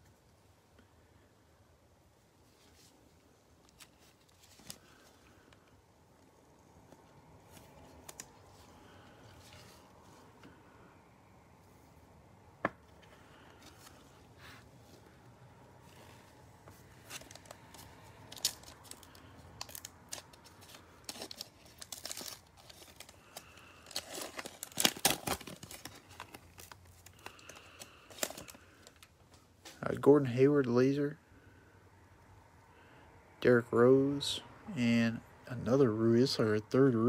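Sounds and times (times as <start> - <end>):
cellophane wrapper crinkling: 3.6 - 5.2, 16.9 - 29.2.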